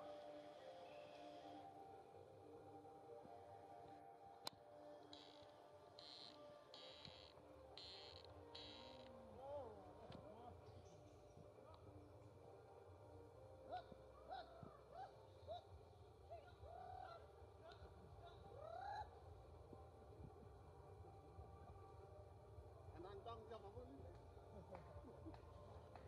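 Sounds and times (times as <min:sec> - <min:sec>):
faint animal calls: 0:05.0 - 0:09.8, 0:13.7 - 0:19.3.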